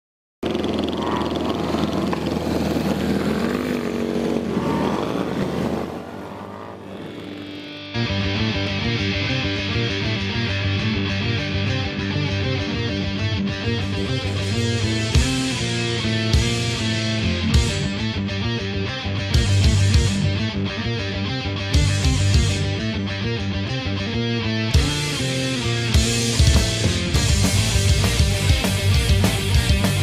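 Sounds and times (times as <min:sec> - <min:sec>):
motorcycle engines revving: 0:00.4 - 0:08.5, 0:13.6 - 0:18.0, 0:24.8 - 0:30.0
heavy rock music with guitars: 0:07.3 - 0:30.0.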